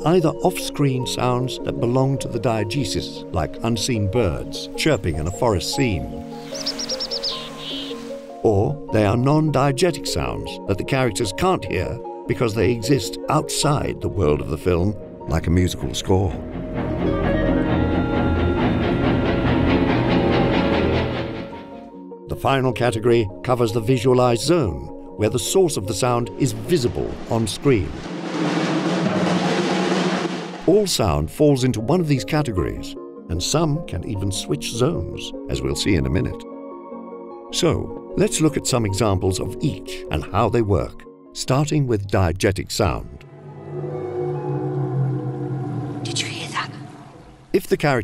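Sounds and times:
soft background music: 0.0 - 28.1, 30.6 - 47.7
bird chirping: 6.2 - 8.3
buzzy bird trill: 6.4 - 8.2
fast drum roll: 26.6 - 31.0.

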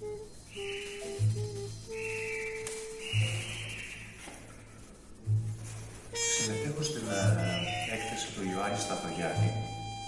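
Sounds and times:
slow held melody notes: 0.0 - 10.0.

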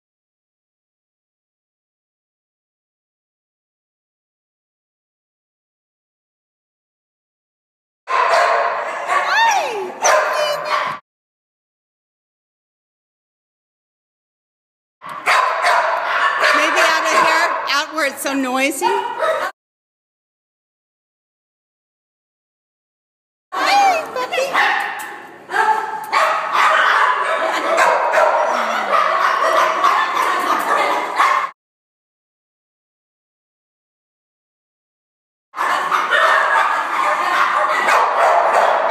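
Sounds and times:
dogs barking and yipping: 8.1 - 11.0, 15.0 - 17.8, 18.8 - 19.5, 23.6 - 31.5, 35.6 - 38.9.

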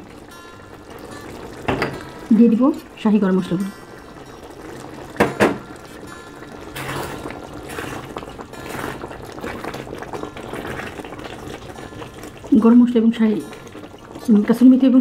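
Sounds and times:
gravy bubbling in a pot: 0.0 - 15.0
spatula stirring in a pot: 3.7 - 15.0
sharp knocks: 5.2 - 5.6.

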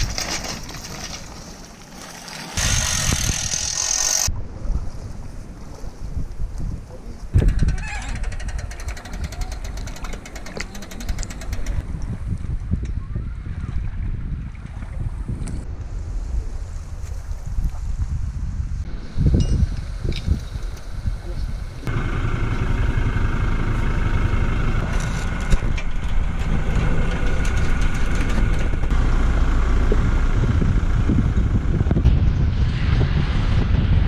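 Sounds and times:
wind on microphone: 2.6 - 21.9, 24.8 - 34.0.

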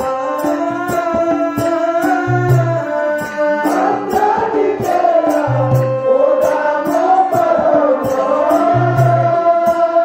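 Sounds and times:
drum strokes: 0.0 - 10.0
person singing: 0.0 - 10.0.

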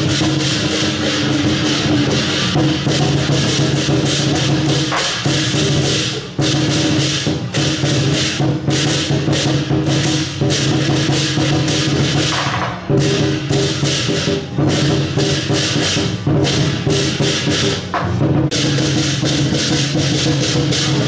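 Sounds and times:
gong: 0.0 - 12.3
cymbals clashing: 0.0 - 21.0
drum beating: 0.0 - 21.0.

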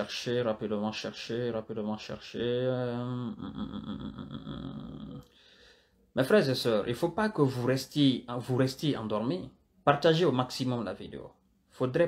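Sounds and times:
man speaking: 0.0 - 5.2, 6.2 - 12.0.

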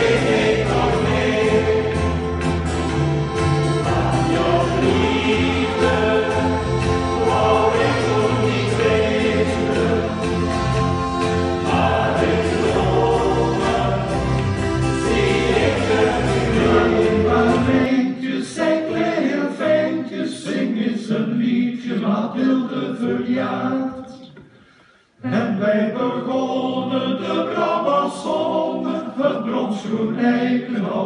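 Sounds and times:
bass line: 0.0 - 17.9
button accordion: 0.0 - 17.9
plucked string instrument: 0.0 - 17.9
male choir singing in harmony: 0.0 - 24.3, 25.2 - 31.0.

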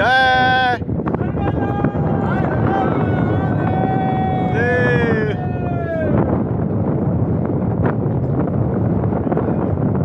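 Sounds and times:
person shouting: 0.0 - 6.2.

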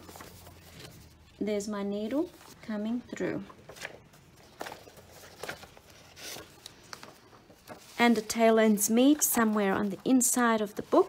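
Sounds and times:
paper pages rustling: 0.0 - 1.4, 2.0 - 2.7, 3.6 - 11.0.

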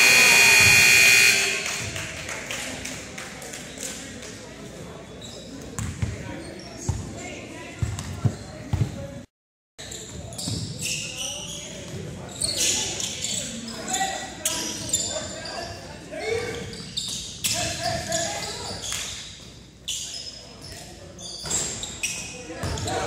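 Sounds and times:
echoing voices: 0.0 - 2.1
sneakers squeaking: 5.2 - 7.1, 9.8 - 15.8, 16.4 - 23.0.

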